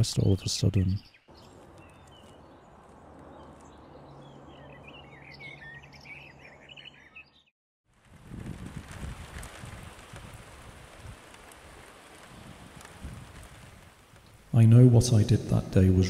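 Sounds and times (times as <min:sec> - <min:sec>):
small birds chirping: 0:00.2 - 0:07.5
steady rain: 0:07.9 - 0:15.2.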